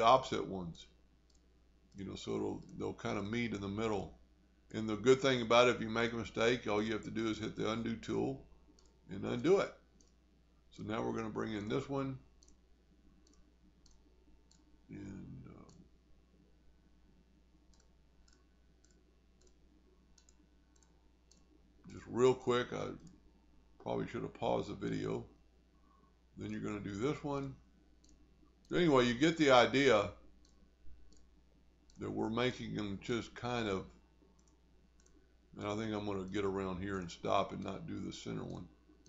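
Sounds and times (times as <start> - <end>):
computer mouse clicks: 1.2 - 2.0, 2.6 - 2.8, 8.7 - 9.0, 10.0 - 10.2, 12.4 - 12.6, 13.2 - 14.8, 15.5 - 15.9, 17.6 - 22.0, 28.0 - 28.8, 30.4 - 32.1, 34.2 - 35.2.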